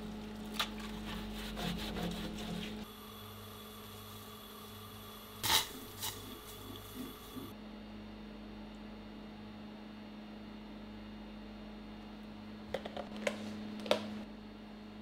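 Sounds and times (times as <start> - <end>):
low appliance hum: 0.0 - 15.0.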